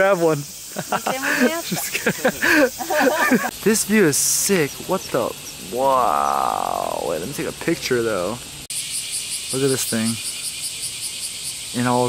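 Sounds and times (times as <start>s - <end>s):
breathy hissing: 0.5s - 3.5s, 5.6s - 7.3s
people laughing and talking: 0.7s - 3.6s.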